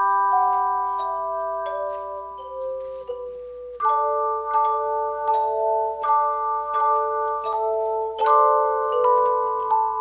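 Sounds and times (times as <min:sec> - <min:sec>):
handbell choir ringing chords: 0:00.0 - 0:10.0.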